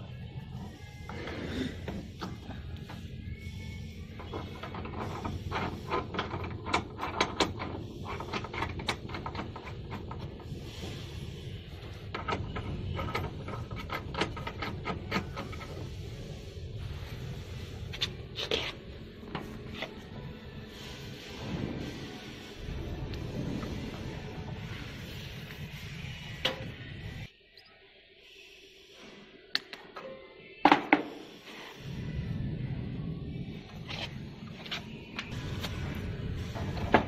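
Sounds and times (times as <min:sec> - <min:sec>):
low background music: 0:00.0 - 0:27.4, 0:29.5 - 0:37.0
hose fittings clicking and knocking: 0:04.3 - 0:10.3.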